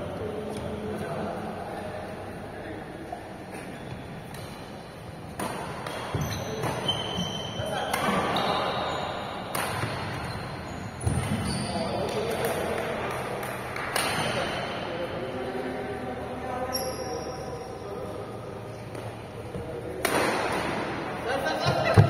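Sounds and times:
shoes squeaking on floor: 3.5 - 4.6, 5.9 - 12.3, 16.6 - 17.8
rackets striking shuttlecock: 5.3 - 6.9, 9.4 - 10.3, 11.0 - 14.5, 19.9 - 21.0.

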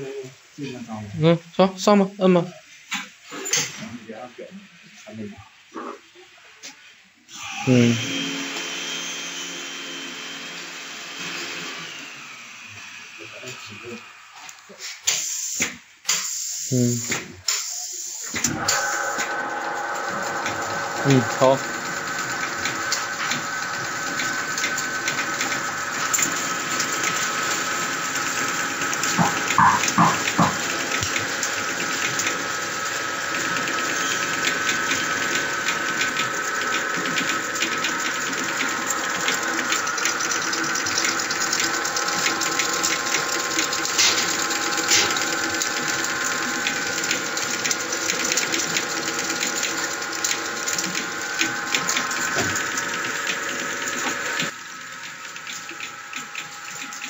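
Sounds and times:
machine whirring and clicking: 14.5 - 57.0
loud knocks: 29.1 - 30.7.

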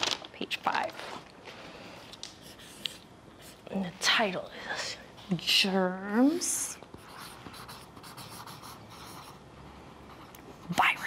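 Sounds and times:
marker pen scratching on paper: 2.4 - 3.6, 6.9 - 9.4, 10.0 - 11.0.

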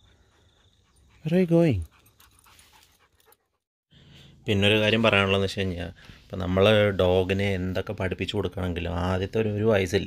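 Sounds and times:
dog panting: 0.0 - 3.7.

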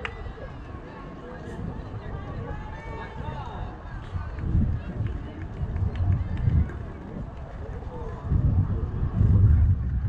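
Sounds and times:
low rumbling surges: 1.5 - 10.0.

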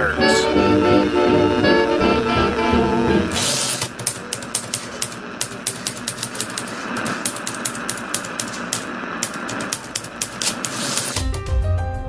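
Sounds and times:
steady hiss: 3.3 - 11.2.

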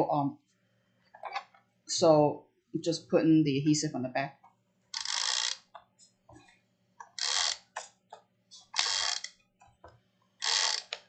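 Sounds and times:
tape runner laying tape: 5.0 - 5.6, 7.2 - 7.7, 8.8 - 9.3, 10.4 - 11.0.

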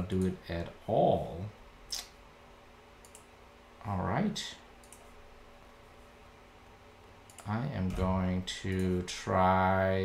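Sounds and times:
computer mouse clicks: 3.0 - 3.3, 4.8 - 5.1, 7.3 - 7.5
person speaking: 7.4 - 10.0.

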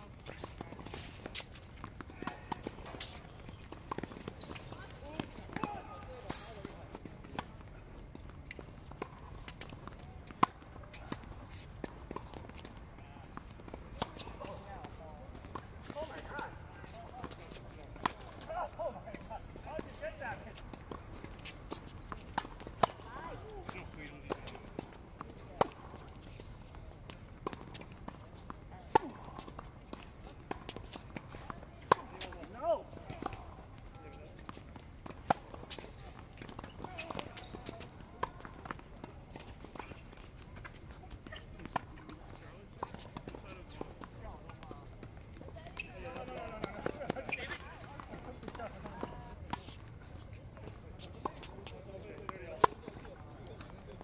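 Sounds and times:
tennis ball struck by racket: 13.4 - 14.7, 19.1 - 26.0, 27.4 - 32.5, 34.4 - 44.6.

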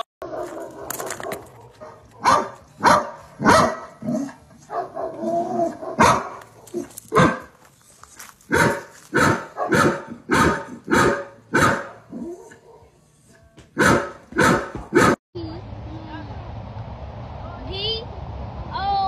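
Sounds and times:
dog barking: 0.2 - 7.5, 8.5 - 13.0, 13.8 - 15.2.

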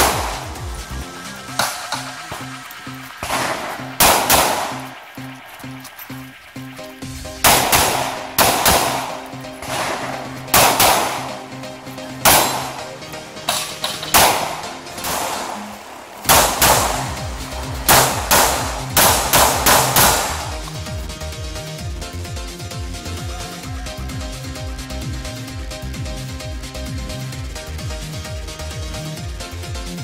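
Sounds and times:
pistol shots: 0.0 - 0.7, 3.1 - 6.1, 7.4 - 20.7
background music: 0.0 - 30.0.

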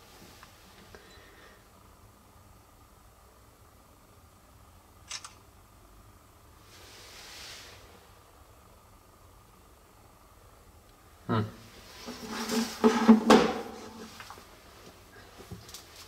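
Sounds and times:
phone camera shutter click: 5.1 - 5.4
soft brushing noise: 6.6 - 8.0, 11.8 - 14.5.

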